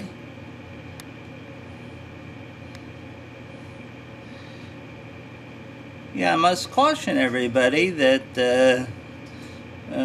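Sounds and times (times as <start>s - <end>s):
room machinery hum: 0.0s - 10.0s.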